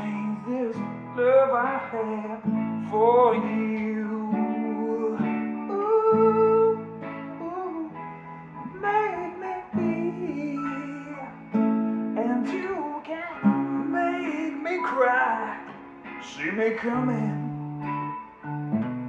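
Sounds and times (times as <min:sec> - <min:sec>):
man singing: 0:00.0 - 0:17.7
acoustic guitar strumming chords: 0:00.0 - 0:19.0.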